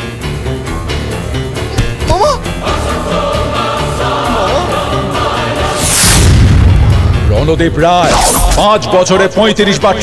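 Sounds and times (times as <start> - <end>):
choir-like voices: 2.1 - 6.4
deep loud boom: 6.0 - 7.9.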